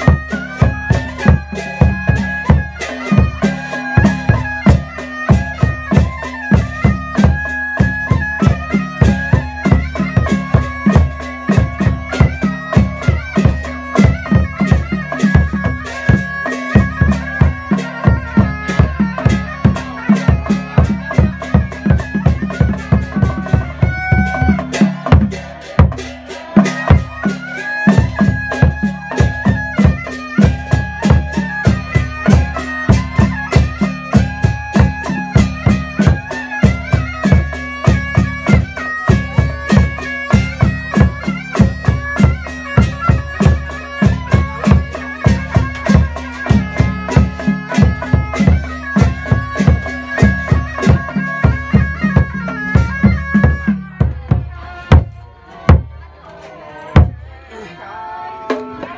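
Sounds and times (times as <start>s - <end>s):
reedy wind instrument melody: 0.0s - 55.1s
drum beats: 0.0s - 57.6s, 58.3s - 58.9s.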